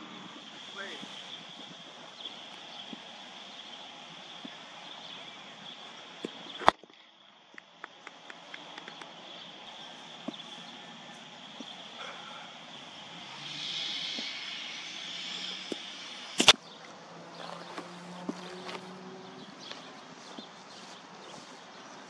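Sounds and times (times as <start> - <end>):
insects chirring: 0.0 - 22.0.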